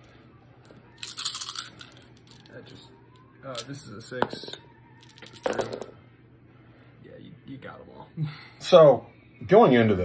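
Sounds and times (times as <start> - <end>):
dice rattling: 1.0 - 2.6, 3.5 - 6.0.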